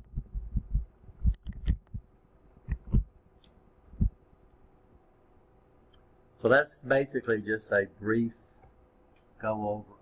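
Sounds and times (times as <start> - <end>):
soft low thumps: 0.0 - 3.2, 3.9 - 4.3.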